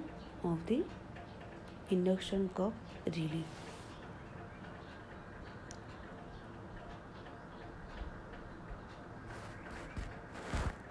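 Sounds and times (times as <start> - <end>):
low background noise: 0.0 - 10.9.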